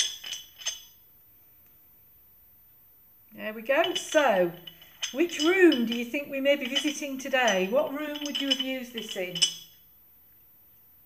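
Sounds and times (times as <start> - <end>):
screw stopper grating and clinking: 0.0 - 1.0, 3.7 - 9.8.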